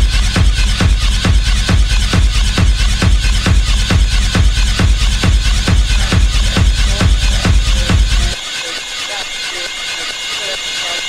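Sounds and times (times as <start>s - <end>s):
warbling vocal-like snippets: 2.0s - 11.0s.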